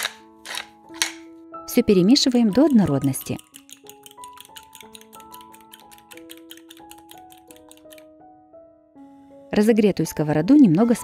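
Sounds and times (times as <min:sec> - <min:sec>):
quiet plucked background music: 0:00.0 - 0:11.0
fork whisking in glass bowl: 0:02.2 - 0:08.1.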